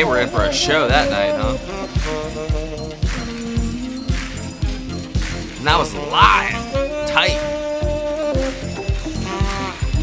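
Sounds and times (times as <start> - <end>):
saxophone with bending notes: 0.0 - 4.2, 6.5 - 10.0
drums keeping steady beat: 0.0 - 10.0
jazz-funk band playing: 0.0 - 10.0.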